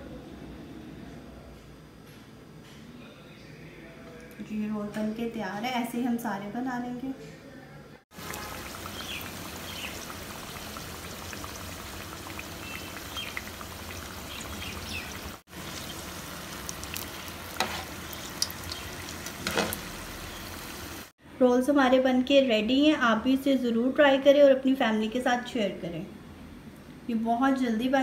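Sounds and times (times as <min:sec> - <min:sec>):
food deep-frying in oil: 0:08.1 - 0:21.1
oil popping: 0:08.1 - 0:21.1.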